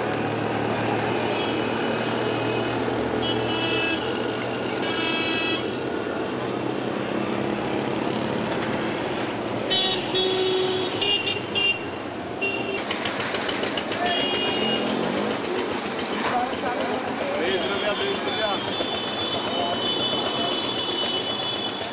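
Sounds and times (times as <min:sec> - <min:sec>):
road noise: 0:00.0 - 0:21.9
small engines: 0:12.6 - 0:21.9.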